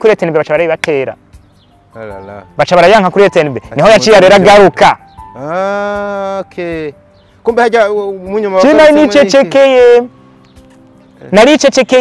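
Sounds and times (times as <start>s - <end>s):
man speaking: 2.0s - 10.1s.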